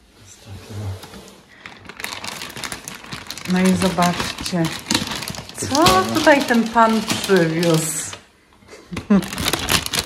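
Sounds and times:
plastic bag rustling: 0.8s - 8.3s, 9.0s - 10.0s.

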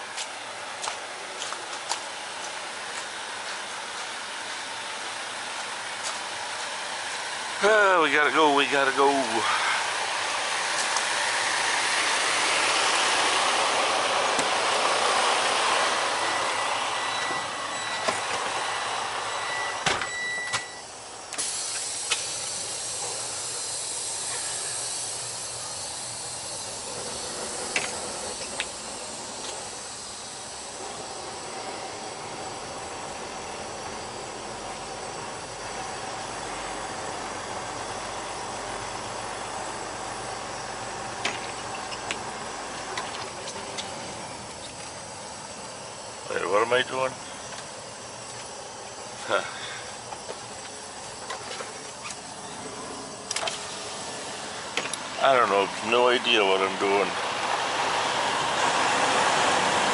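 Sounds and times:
truck engine idling: 0.0s - 59.9s
cab door shutting: 19.6s - 20.8s
steady hiss: 20.9s - 59.9s.

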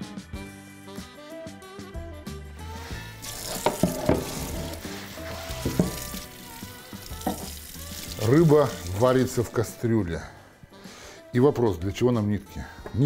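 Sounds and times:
background music with bass line: 0.0s - 9.9s
hiss of water: 2.7s - 9.1s.

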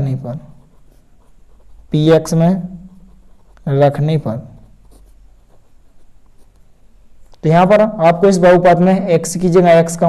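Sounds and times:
pen scratching on paper: 0.0s - 6.6s.

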